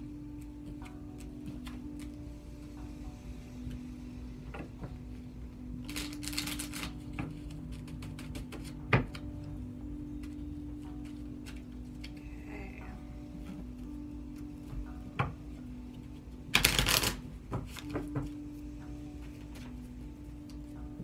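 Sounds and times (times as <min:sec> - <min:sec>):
card deck riffle: 0:05.9 - 0:07.0, 0:16.5 - 0:17.2.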